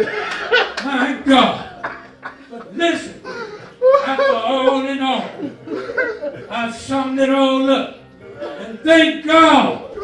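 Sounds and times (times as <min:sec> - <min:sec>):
man preaching into a microphone: 0:00.8 - 0:01.8, 0:02.6 - 0:03.2, 0:03.8 - 0:05.4, 0:06.5 - 0:10.0
chuckling: 0:01.6 - 0:06.5.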